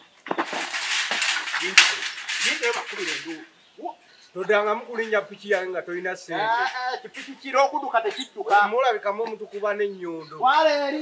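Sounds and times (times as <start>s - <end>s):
wire-mesh gate rattling: 0.2s - 3.5s, 6.4s - 9.0s.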